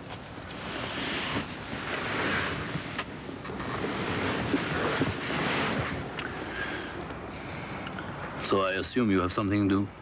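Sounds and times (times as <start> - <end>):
soft rushing wind noise: 0.0 - 10.0.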